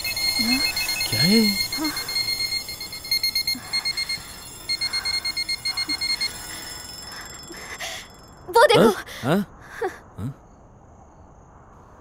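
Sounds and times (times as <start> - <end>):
rapid high-pitched alarm beeps: 0.0 - 9.0.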